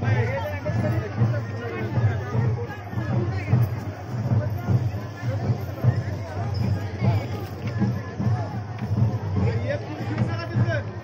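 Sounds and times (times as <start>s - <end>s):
crowd chatter: 0.0s - 11.0s
music with low drum beat: 0.0s - 11.0s.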